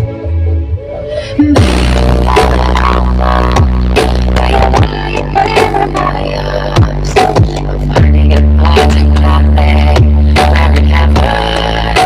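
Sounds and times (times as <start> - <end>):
falling bass sweeps: 0.0 - 12.0
loud electronic dance music: 1.4 - 12.0.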